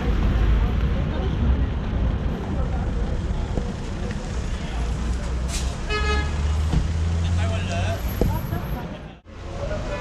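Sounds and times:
traffic engine rumble: 0:00.0 - 0:10.0
vehicle horn toot: 0:05.9 - 0:06.4.

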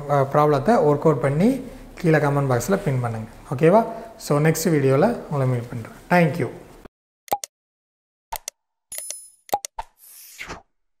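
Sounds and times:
sharp click-pops: 0:07.3 - 0:07.5, 0:08.3 - 0:10.0.

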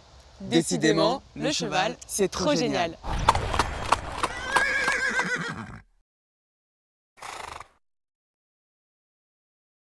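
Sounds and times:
hooves clip-clopping: 0:03.2 - 0:05.4
horse whinnying: 0:04.0 - 0:05.9, 0:07.2 - 0:07.8.

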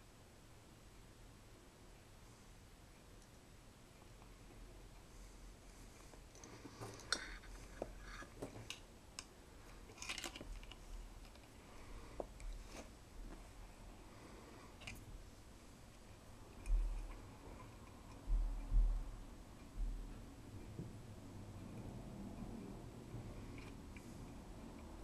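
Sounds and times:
faint clicks and rustles: 0:02.2 - 0:21.0.

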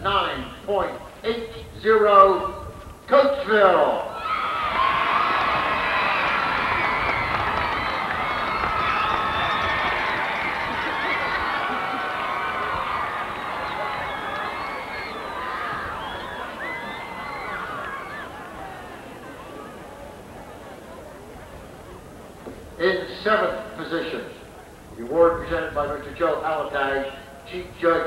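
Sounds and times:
stadium crowd cheering: 0:04.1 - 0:22.3.

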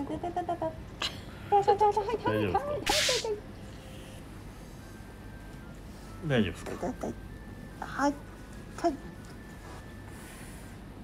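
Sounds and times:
short sharp hissing burst: 0:02.9 - 0:03.3.

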